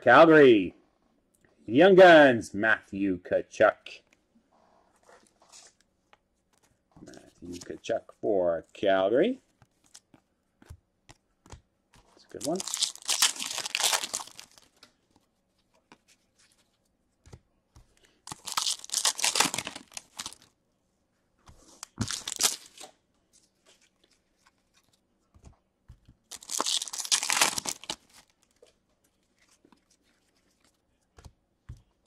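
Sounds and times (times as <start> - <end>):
foil wrappers tearing and crinkling: 12.3 - 14.8, 18.3 - 20.5, 21.8 - 22.9, 26.3 - 28.4.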